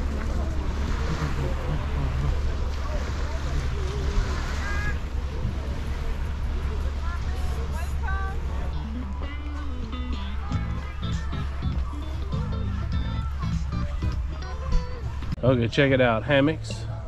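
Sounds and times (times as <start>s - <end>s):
distant voices: 0.0s - 17.0s.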